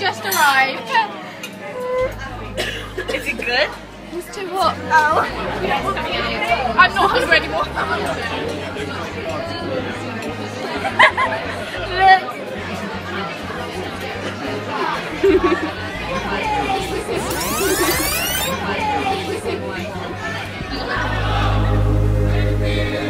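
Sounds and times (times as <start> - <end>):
restaurant chatter: 0.0 - 22.5
background music: 20.6 - 23.0.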